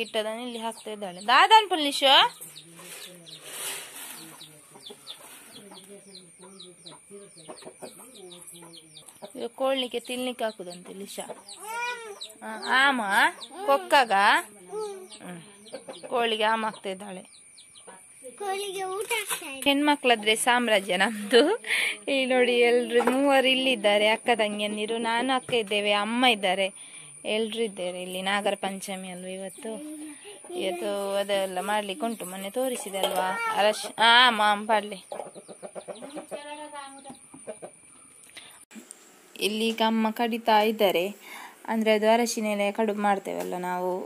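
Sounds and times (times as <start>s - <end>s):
hen clucking: 0.0s - 18.1s, 29.6s - 38.1s
rooster clucking: 14.7s - 16.8s, 35.0s - 38.0s.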